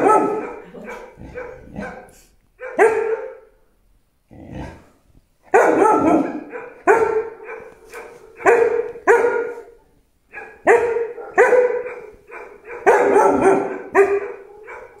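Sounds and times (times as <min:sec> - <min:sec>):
dog barking sharply: 0:00.0 - 0:03.5, 0:05.5 - 0:15.0.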